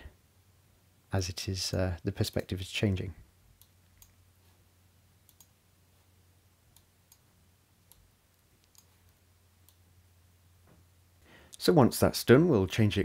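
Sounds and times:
faint low hum: 0.0 - 13.0
computer mouse clicks: 3.6 - 4.2, 5.2 - 5.6, 6.7 - 9.8.

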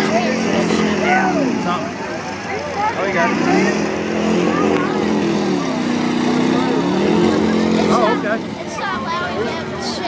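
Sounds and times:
race car engines revving: 0.0 - 10.0
spectators' voices: 0.0 - 10.0.

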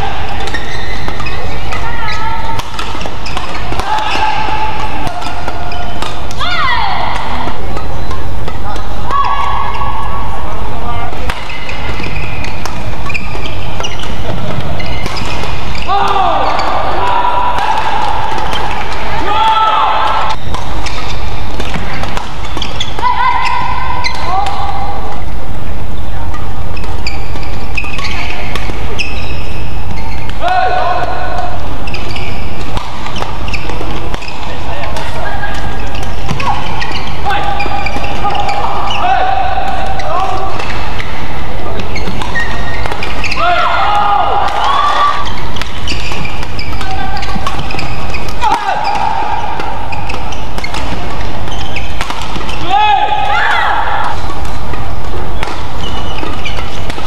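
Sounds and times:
shoes thudding and squeaking on court: 0.0 - 9.9, 11.1 - 19.2, 20.0 - 24.7, 25.9 - 57.0
loud voices calling out: 0.0 - 21.2, 33.3 - 56.9
rackets hitting shuttlecock: 0.0 - 57.0.

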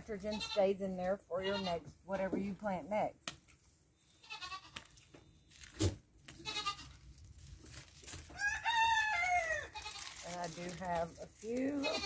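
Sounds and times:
farm animal calling: 0.0 - 2.4, 11.1 - 12.0.

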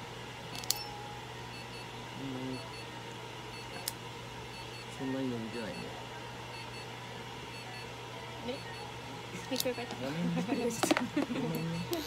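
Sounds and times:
steady hum: 0.0 - 12.0
high electronic beeps: 5.5 - 5.9.

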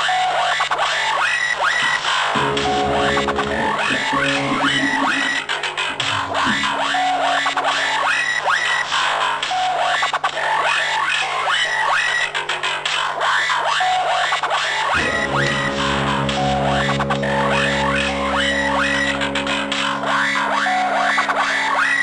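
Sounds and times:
electric guitar rock music: 2.3 - 8.4, 15.0 - 22.0.

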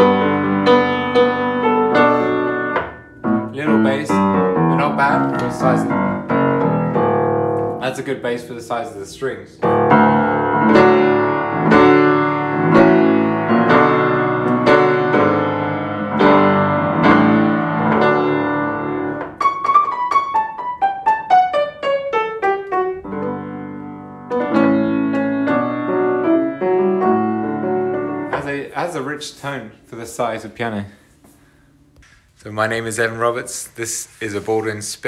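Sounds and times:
piano playing chords: 0.0 - 32.0.

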